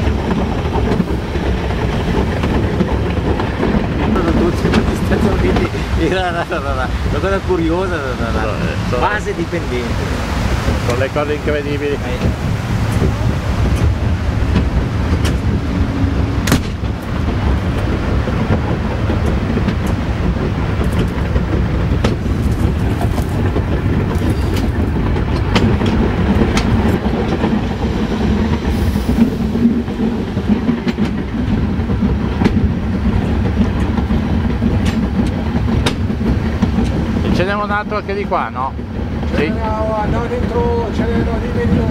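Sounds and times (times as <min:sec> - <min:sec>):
rail joint clicks: 0:00.0 - 0:41.9
train wheels rumbling on rails: 0:00.0 - 0:41.9.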